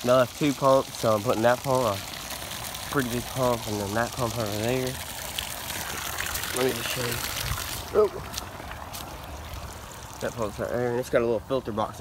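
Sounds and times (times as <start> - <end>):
water trickling onto leaves: 0.0 - 12.0.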